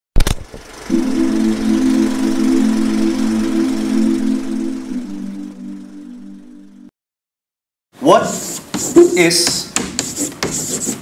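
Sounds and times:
low droning chord: 0.8s - 6.9s.

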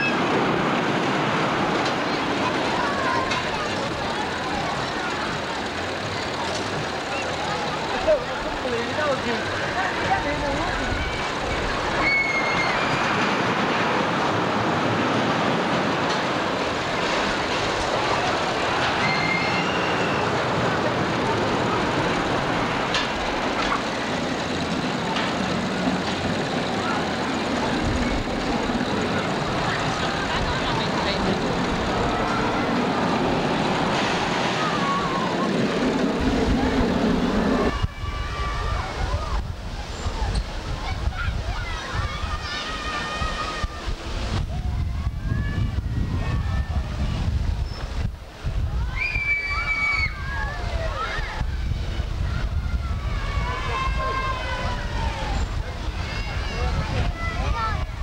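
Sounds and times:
steady background rumble: 0.0s - 49.1s
crowd of voices talking: 0.0s - 58.0s
short high squeals: 12.0s - 13.2s, 19.0s - 20.4s.

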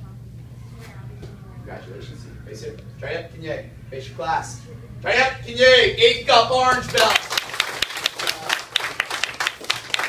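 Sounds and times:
people applauding: 6.7s - 10.0s.

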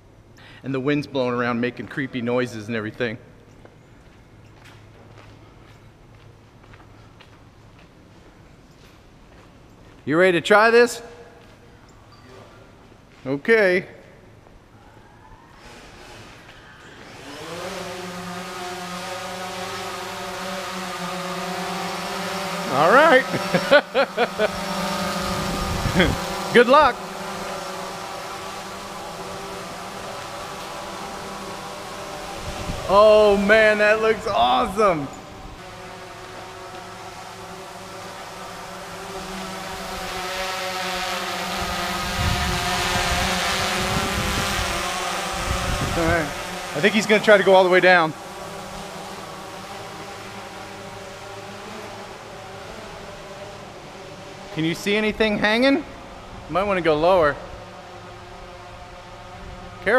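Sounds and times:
drone motors buzzing: 14.7s - 59.9s
wind rumbling on microphone: 25.2s - 26.4s, 32.3s - 33.4s, 41.6s - 46.5s.

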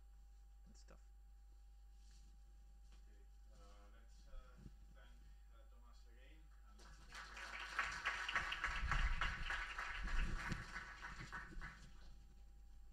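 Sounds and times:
audience applauding: 6.8s - 12.0s.

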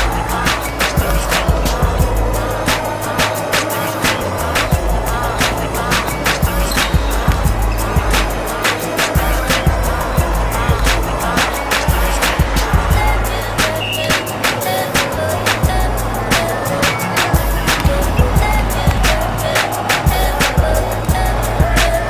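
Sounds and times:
music with drum beat and bass: 0.0s - 22.0s.

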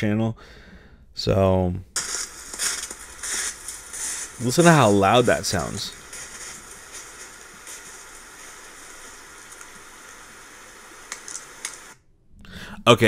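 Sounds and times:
steady hiss: 1.9s - 12.0s
faint crackle: 2.0s - 12.0s.

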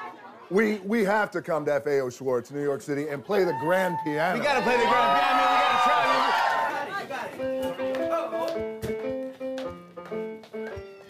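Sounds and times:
floor piano notes: 6.0s - 11.0s
foot thudding on piano key: 7.4s - 11.0s.

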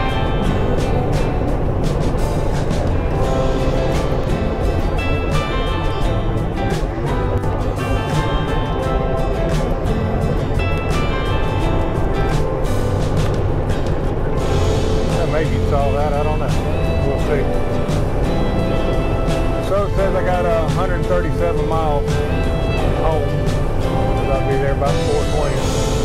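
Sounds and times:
background music with steady beat: 0.0s - 26.0s
truck road noise at highway speed: 0.0s - 26.0s.

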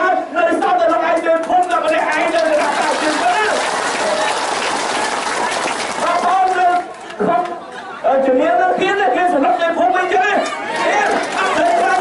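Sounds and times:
man speaking over microphone: 0.0s - 3.7s, 6.0s - 12.0s
crowd applauding: 1.6s - 7.3s, 10.7s - 12.0s.

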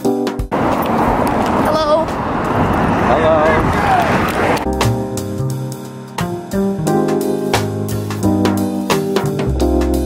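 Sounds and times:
city street traffic: 0.4s - 4.7s
voices: 1.2s - 4.6s
background music: 4.6s - 10.0s.

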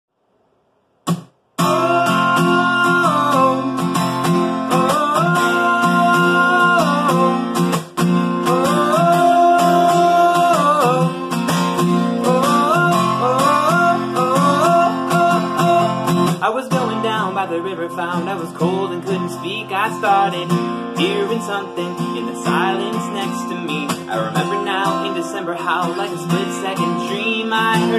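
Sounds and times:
acoustic guitar strumming: 1.0s - 27.9s.

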